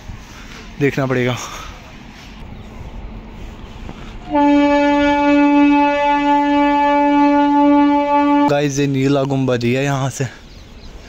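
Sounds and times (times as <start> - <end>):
train horn long note: 4.2 - 8.8.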